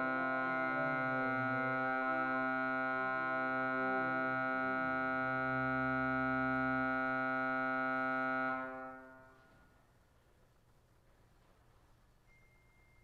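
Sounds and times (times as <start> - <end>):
pipe organ chord: 0.0 - 9.6.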